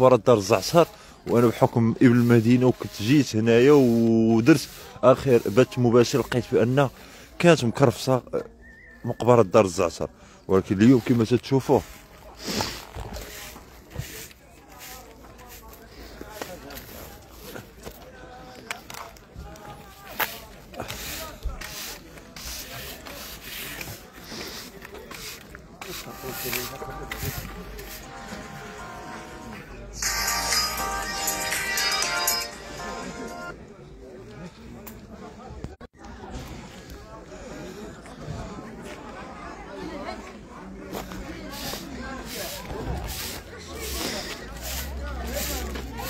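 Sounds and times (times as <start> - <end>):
broom sweeping dirt path: 0.4 - 8.1, 10.6 - 31.1, 40.2 - 46.0
soft rhythmic scuffing: 10.8 - 29.2, 40.8 - 46.0.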